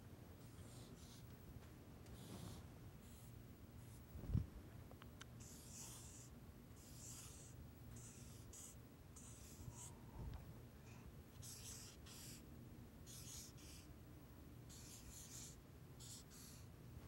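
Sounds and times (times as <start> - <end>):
marker pen writing on paper: 0.5 - 1.3, 2.2 - 4.0, 5.4 - 9.9, 11.4 - 12.4, 13.1 - 13.9, 14.7 - 16.7.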